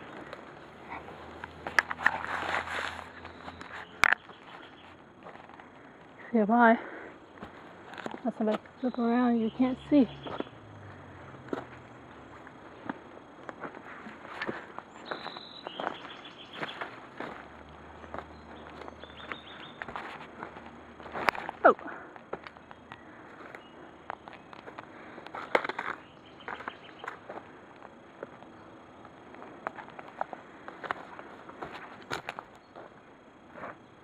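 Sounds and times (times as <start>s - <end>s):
footsteps crunching through dry leaves: 1.6s - 5.6s, 13.6s - 21.7s
phone handling rustle: 22.4s - 27.2s.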